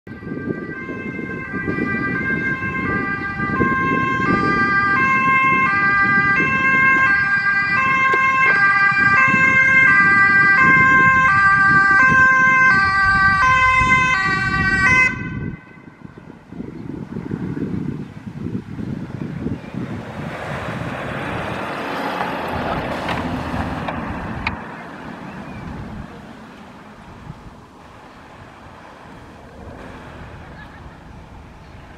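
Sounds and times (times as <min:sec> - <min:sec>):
two-tone siren: 0:00.1 - 0:16.3
van engine and tyre noise: 0:00.1 - 0:31.9.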